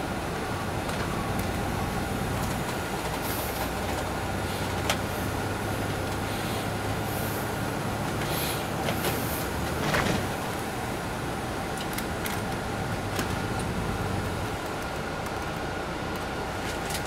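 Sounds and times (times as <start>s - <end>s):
diesel engine running: 0.0s - 17.0s
road and tyre noise: 0.0s - 17.0s.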